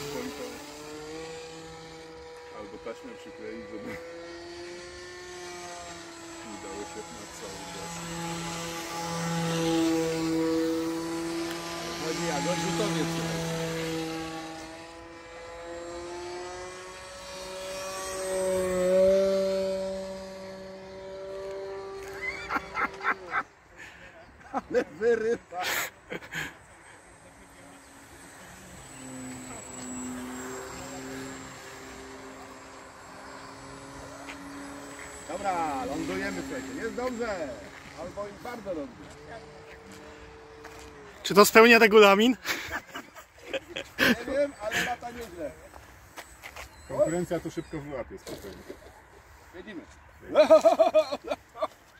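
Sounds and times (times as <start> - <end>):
model aircraft motor whine: 0.0 - 24.5, 25.2 - 51.1.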